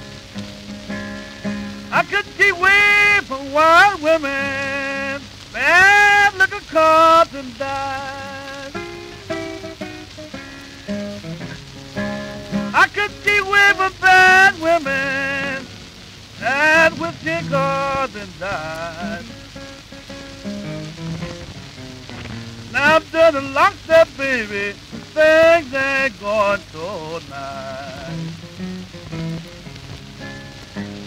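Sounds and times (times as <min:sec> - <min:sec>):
acoustic guitar: 0:00.0 - 0:31.0
record crackle and hiss: 0:00.0 - 0:31.0
man singing: 0:01.9 - 0:09.3, 0:12.5 - 0:19.4, 0:22.7 - 0:28.4.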